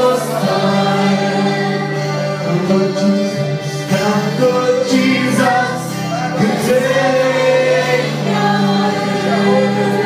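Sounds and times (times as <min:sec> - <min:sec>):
group singing gospel: 0:00.0 - 0:10.0
musical accompaniment: 0:00.0 - 0:10.0.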